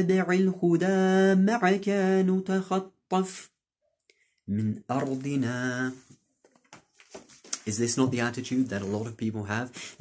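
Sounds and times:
man chanting: 0.0s - 3.6s, 4.5s - 6.1s, 7.6s - 10.0s.

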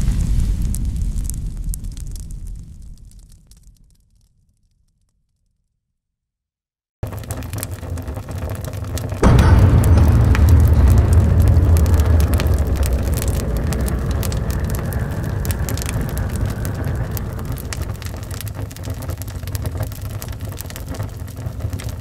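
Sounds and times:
fire crackling: 0.0s - 4.3s, 7.0s - 22.0s
deep rumble: 9.0s - 22.0s.

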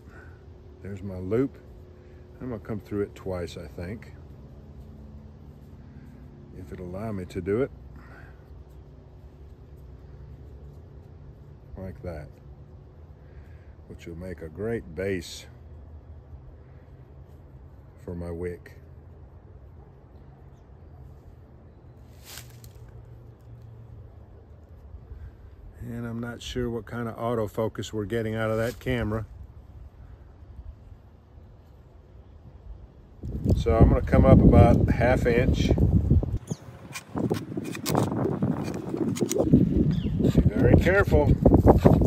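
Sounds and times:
wind rumbling on microphone: 32.4s - 42.0s.

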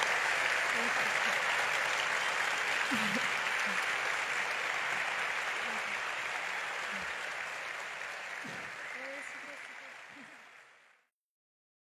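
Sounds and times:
audience applauding: 0.0s - 11.1s.

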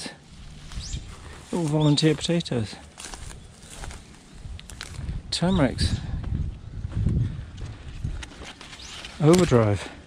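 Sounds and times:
footsteps: 0.4s - 5.1s, 6.1s - 10.0s.

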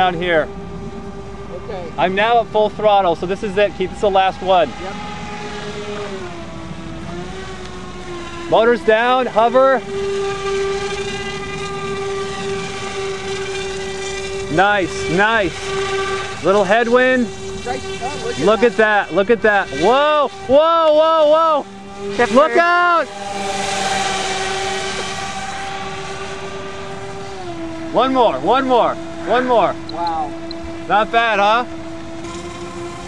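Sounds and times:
model aircraft motors whining: 0.0s - 33.0s.

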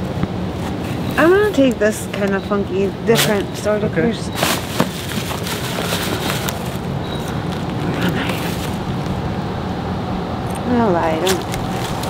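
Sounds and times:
outdoor background rumble: 0.0s - 12.0s
bags rustling: 3.1s - 9.1s, 11.2s - 12.0s.

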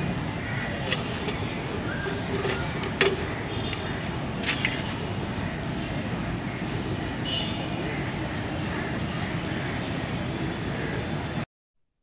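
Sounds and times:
city traffic rumble: 0.0s - 11.5s.

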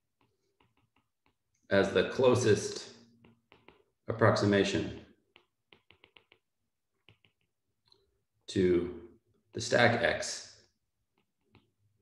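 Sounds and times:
stylus tapping tablet screen: 0.0s - 1.7s, 2.4s - 8.1s, 10.6s - 12.0s.

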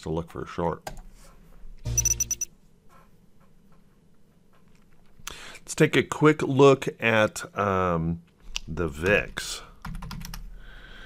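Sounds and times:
bright bell-like ringing: 1.9s - 2.5s.

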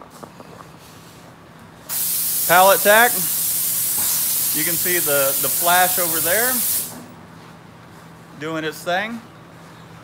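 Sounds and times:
loud steady hiss: 1.9s - 7.1s.

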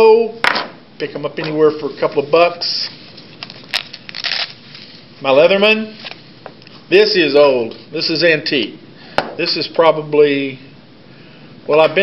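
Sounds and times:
fabric pouch crackle: 3.5s - 4.8s.

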